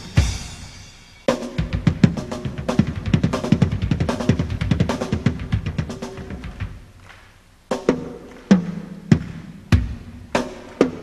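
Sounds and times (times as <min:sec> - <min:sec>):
fast drum solo: 0:00.0 - 0:06.9, 0:07.7 - 0:11.0.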